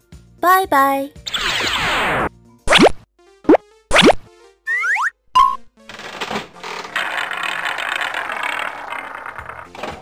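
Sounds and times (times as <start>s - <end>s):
prize wheel ratchet clicking: 5.9s - 9.8s.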